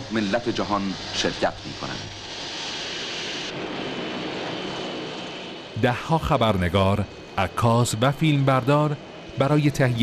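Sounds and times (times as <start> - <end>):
jet airliner engines running: 0.0 - 10.0.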